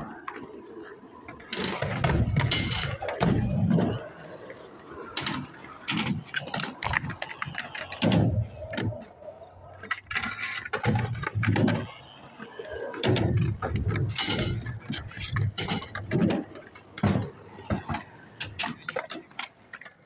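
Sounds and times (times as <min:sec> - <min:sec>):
skateboard clacking on ground: 0:00.0 - 0:20.0
skateboard wheels rolling on concrete: 0:00.0 - 0:20.0.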